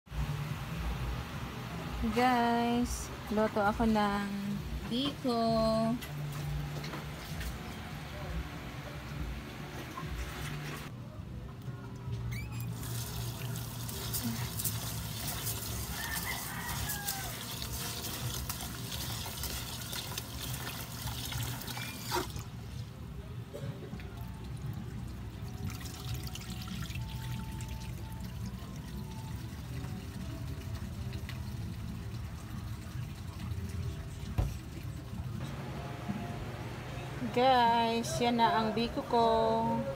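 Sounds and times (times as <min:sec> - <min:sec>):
water pouring into pot: 0:12.7 - 0:22.6.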